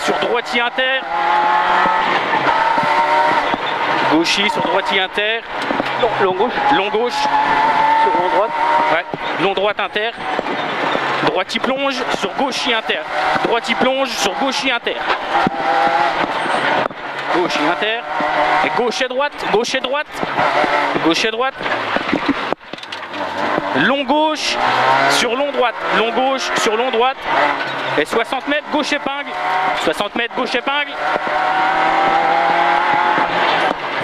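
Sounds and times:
car engine running at high revs: 0.0s - 34.0s
road noise: 0.0s - 34.0s.

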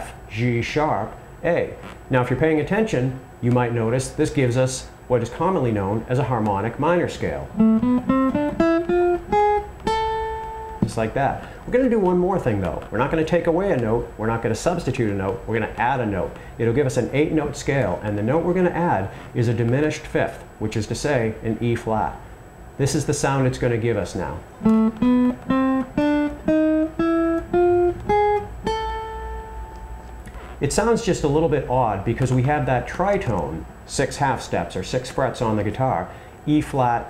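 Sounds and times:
acoustic guitar plucked notes: 7.5s - 11.1s, 24.5s - 30.3s.

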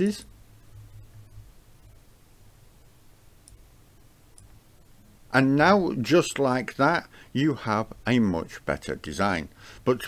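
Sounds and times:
low steady hum: 0.0s - 10.0s
faint computer mouse click: 3.4s - 3.6s.

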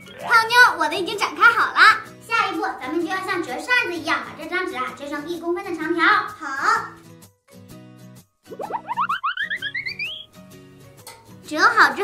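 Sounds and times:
light background music: 0.0s - 12.0s
cartoon rising note run: 8.6s - 10.2s.

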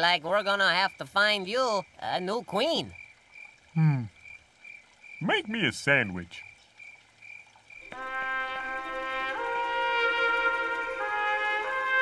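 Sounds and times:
brass fanfare trumpet chord: 7.9s - 12.0s.

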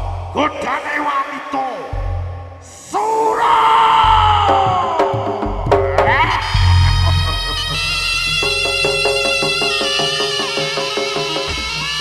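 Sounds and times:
deep low boom: 1.9s - 2.6s, 5.4s - 8.1s
long high sliding note: 6.4s - 11.1s.

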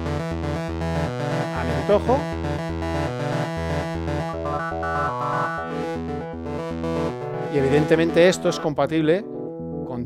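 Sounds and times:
pulsing bass notes: 0.0s - 8.7s
synthesizer sustained notes: 1.1s - 8.7s.

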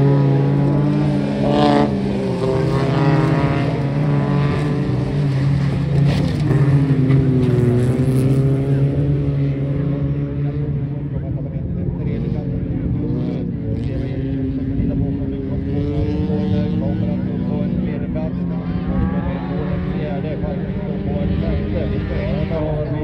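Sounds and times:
race car engine revving: 0.0s - 23.0s.

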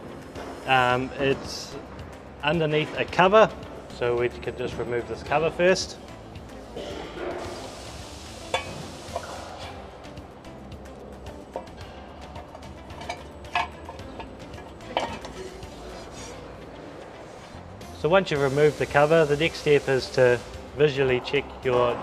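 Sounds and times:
quiet background music: 0.0s - 22.0s
metal clinks and knocks: 8.5s - 9.4s, 11.3s - 15.9s.

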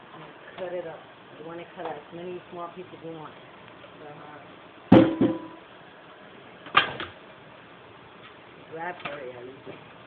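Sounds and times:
hard objects knocking on counter: 4.9s - 5.6s
kitchen clatter: 4.9s - 5.6s, 6.7s - 7.2s.

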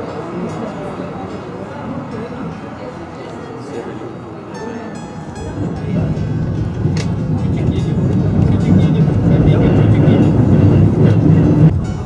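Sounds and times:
funicular rumbling on rails: 0.0s - 12.0s.

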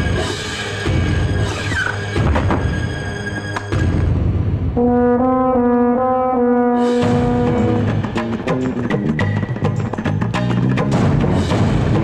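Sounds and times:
tense film score: 0.0s - 12.0s.

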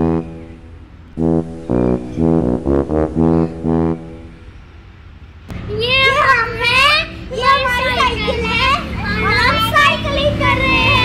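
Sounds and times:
young children calling and chattering: 5.5s - 11.0s.

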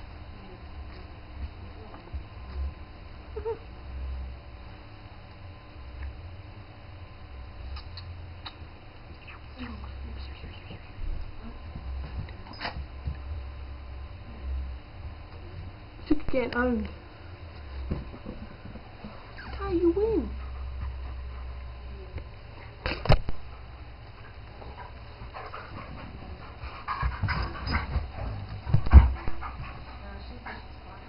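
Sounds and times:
dog whining: 19.3s - 19.6s.

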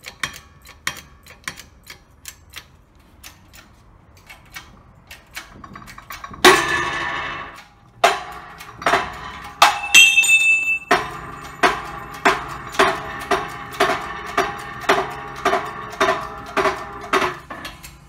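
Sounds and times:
shop press pump clicking: 0.0s - 18.0s
sharp metal bangs: 5.5s - 17.8s
ringing metallic burst: 6.4s - 17.5s.

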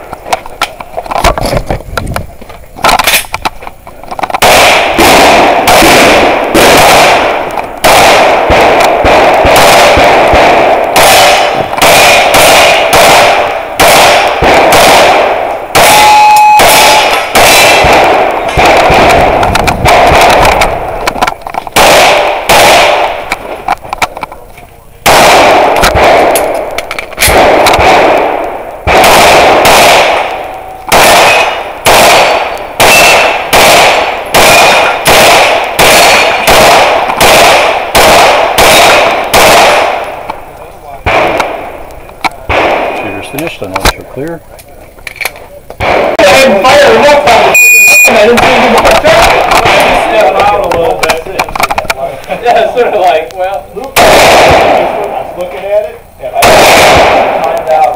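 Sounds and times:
rapid pistol fire: 4.2s - 24.2s, 25.0s - 43.8s, 45.8s - 53.2s, 54.0s - 57.9s.

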